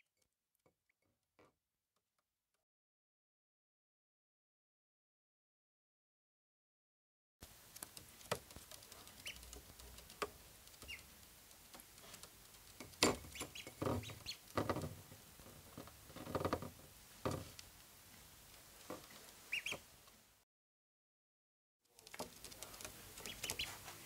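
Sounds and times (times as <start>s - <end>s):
rapid pecking: 7.4s - 14.9s, 21.9s - 24.0s
duck bills tapping on plates: 7.9s - 15.1s, 22.0s - 23.8s
ducklings peeping: 8.4s - 10.1s, 10.8s - 11.1s, 12.8s - 14.5s, 19.0s - 19.9s, 22.8s - 24.0s.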